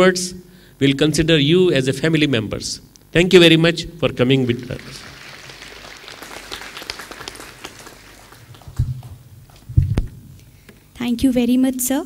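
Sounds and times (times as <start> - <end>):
audience applauding: 4.5 - 9.3.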